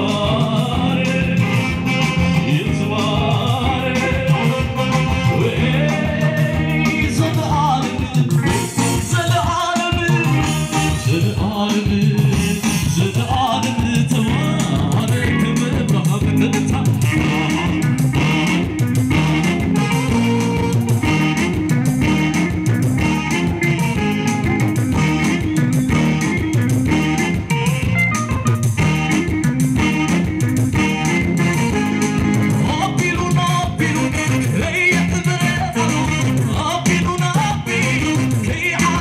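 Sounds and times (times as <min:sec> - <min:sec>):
man singing into microphone: 0:00.0 - 0:18.5, 0:32.5 - 0:39.0
electric bass: 0:00.0 - 0:39.0
guitar: 0:00.0 - 0:39.0
saxophone: 0:00.0 - 0:39.0.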